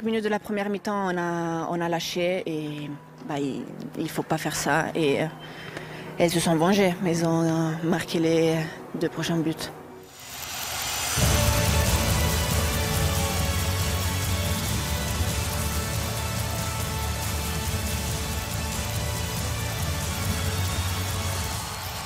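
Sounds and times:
outro jingle music: 0:10.2 - 0:22.0.

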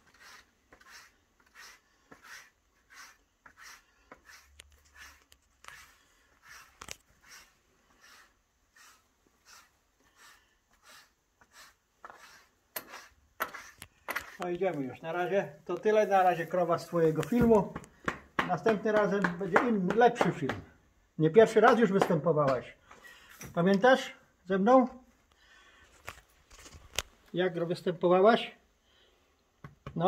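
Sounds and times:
tool rasping on cow's neck: 0:00.0 - 0:14.7.

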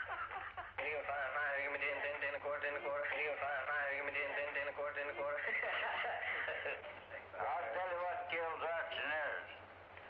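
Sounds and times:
man doing auctioneer's chant: 0:07.4 - 0:09.5.

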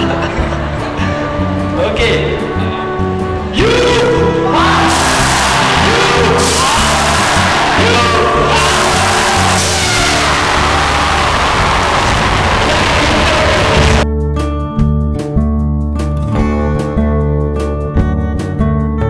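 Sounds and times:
event music with bass beat: 0:03.6 - 0:10.6
crowd cheering and whooping: 0:04.4 - 0:14.0.

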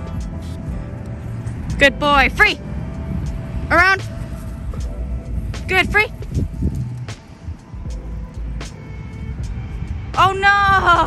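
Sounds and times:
city street traffic rumble: 0:00.0 - 0:11.0
light background music: 0:00.0 - 0:11.0.

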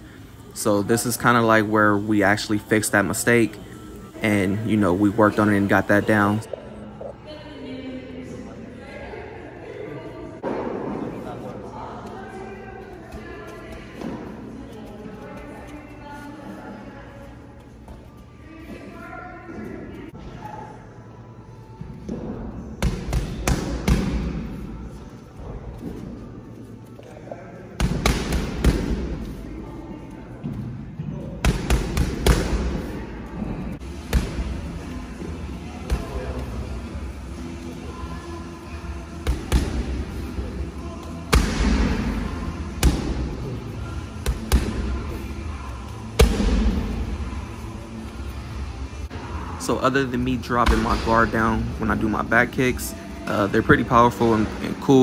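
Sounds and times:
background music: 0:00.0 - 0:10.4, 0:11.6 - 0:55.0
kicks and punches hitting pads: 0:46.2 - 0:46.8.

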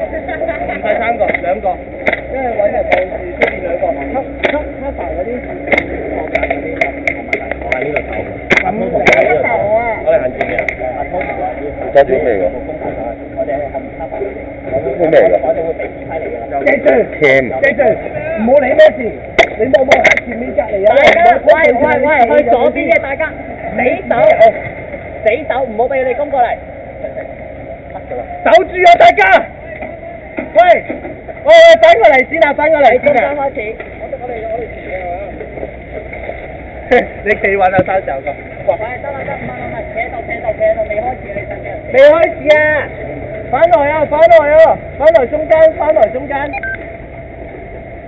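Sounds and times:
people talking and calling out: 0:00.0 - 0:48.0.

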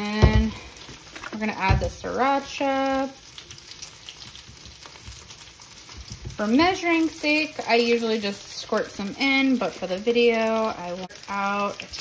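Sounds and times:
meat sizzling in oil: 0:00.0 - 0:12.0.

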